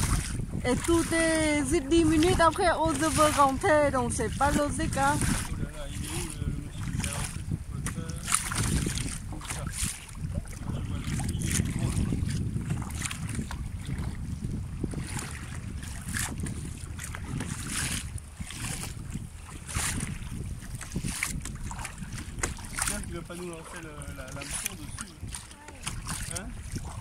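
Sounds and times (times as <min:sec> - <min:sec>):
paddle blades splashing water: 0:00.0 - 0:27.0
wind buffeting microphone: 0:00.0 - 0:27.0.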